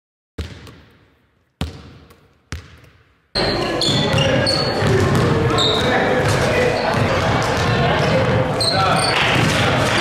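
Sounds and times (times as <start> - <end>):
basketball bouncing: 0.4 - 3.1, 3.9 - 5.5, 6.1 - 8.4.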